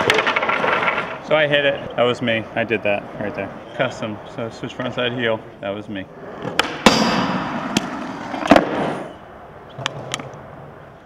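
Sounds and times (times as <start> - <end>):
skateboard landing clack: 0.0 - 1.2, 6.4 - 9.1, 9.7 - 10.6
skateboard grinding on metal: 0.0 - 2.7, 6.1 - 9.2
wheels rolling on concrete: 0.0 - 11.0.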